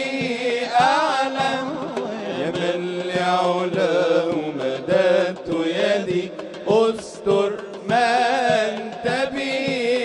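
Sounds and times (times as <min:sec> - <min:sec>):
lead male voice singing: 0:00.0 - 0:10.0.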